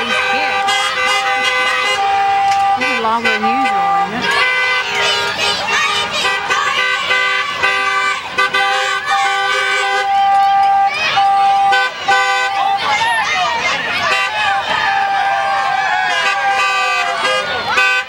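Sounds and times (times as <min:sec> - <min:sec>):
people cheering and shouting: 0:00.0 - 0:18.0
vehicle horns honking: 0:00.0 - 0:18.0.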